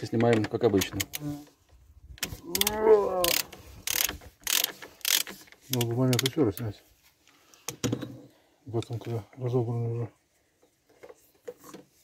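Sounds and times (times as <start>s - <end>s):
ratchet handle clicking: 2.2s - 6.4s.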